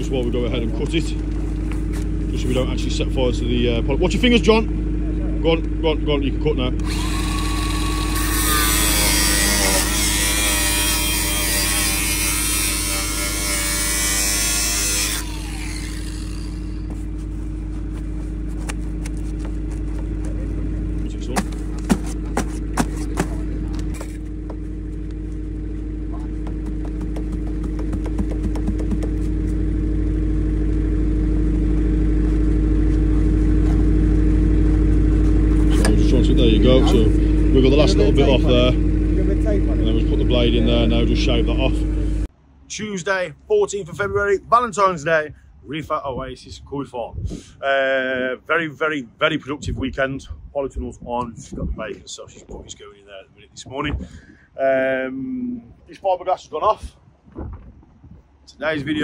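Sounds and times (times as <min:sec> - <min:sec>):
steady low hum: 0:00.0 - 0:46.5
angle grinder cutting pipe: 0:06.8 - 0:17.2.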